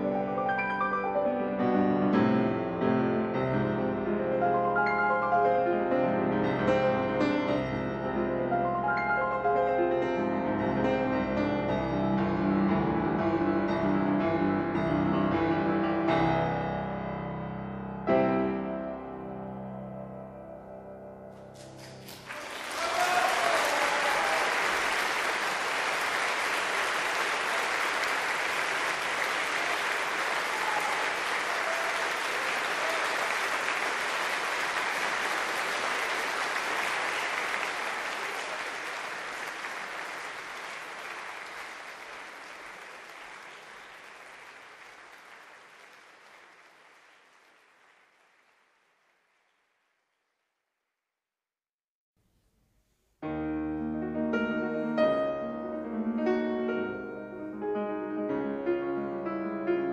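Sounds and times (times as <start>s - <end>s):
piano notes: 0.0s - 22.2s, 53.2s - 59.9s
audience applauding: 21.6s - 50.2s.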